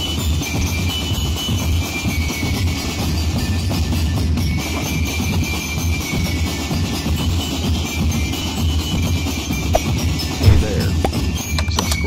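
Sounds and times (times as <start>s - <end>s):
bass and snare drums pounding: 5.4s - 11.4s.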